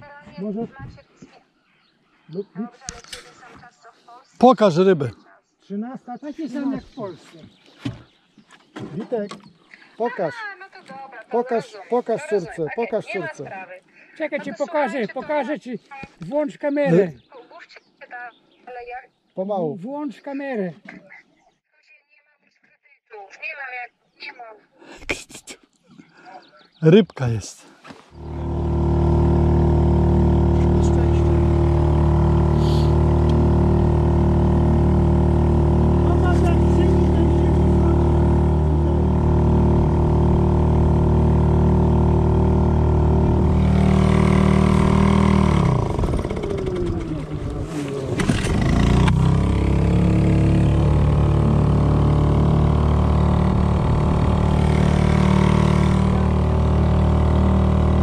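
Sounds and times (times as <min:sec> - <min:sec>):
small outboard motor running: 0:28.1 - 0:58.0.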